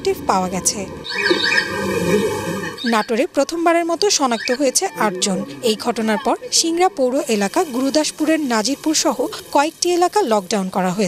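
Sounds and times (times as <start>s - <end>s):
indistinct voices: 0.0s - 11.0s.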